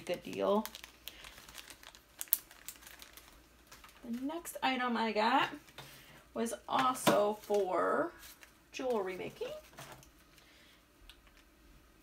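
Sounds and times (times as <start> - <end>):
packaging crinkling: 0.0 - 4.6, 7.3 - 10.5.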